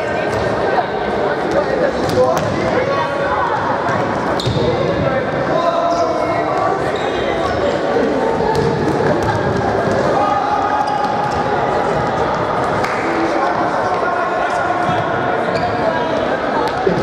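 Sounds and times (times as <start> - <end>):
players calling in echoing hall: 0.0 - 17.0.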